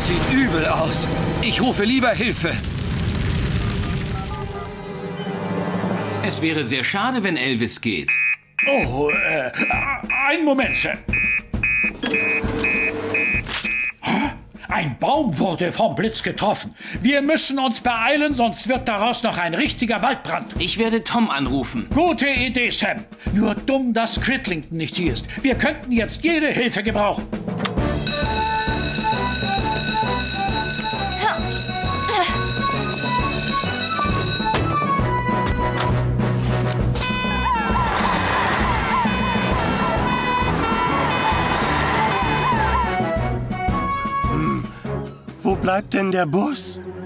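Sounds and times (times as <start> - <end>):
background music: 0.0 - 2.6, 4.3 - 8.0, 8.7 - 47.0
printer beeping: 11.1 - 14.0, 37.0 - 37.8
electric alarm bell ringing: 11.7 - 13.4, 28.0 - 34.7, 37.0 - 37.7, 38.9 - 42.5.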